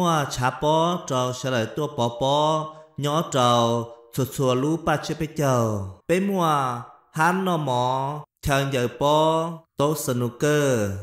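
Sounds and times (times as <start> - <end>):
man chanting speech: 0.0 - 11.0.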